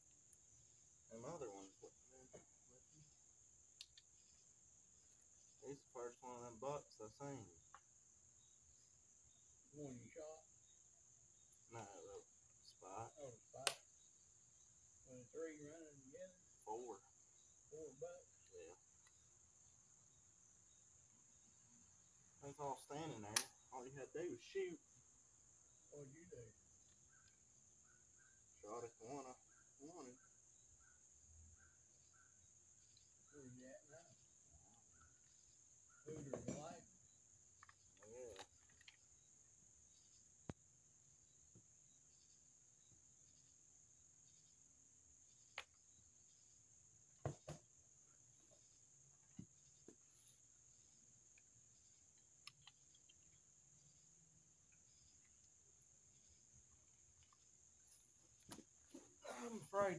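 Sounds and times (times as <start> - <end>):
insects chirring: 0.0 - 59.9
sharp clicks: 23.3 - 23.6, 52.2 - 53.2.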